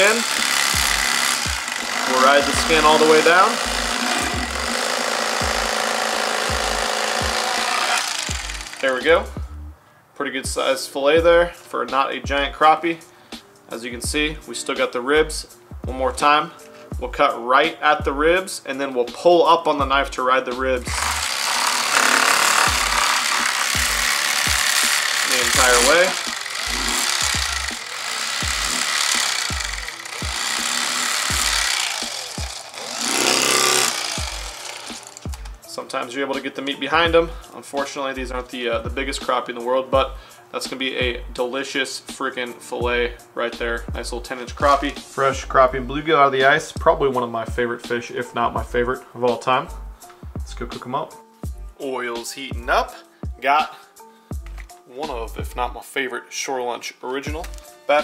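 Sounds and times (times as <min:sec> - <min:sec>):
electric fillet knife cutting: 0:00.0 - 0:09.1, 0:20.9 - 0:35.6
low music beat: 0:00.4 - 0:09.8, 0:20.6 - 0:21.3, 0:22.5 - 0:23.1, 0:23.7 - 0:35.6
background music with bass beat: 0:03.6 - 0:04.7, 0:08.3 - 0:09.8, 0:11.2 - 0:11.5, 0:19.8 - 0:21.2, 0:49.6 - 0:50.8.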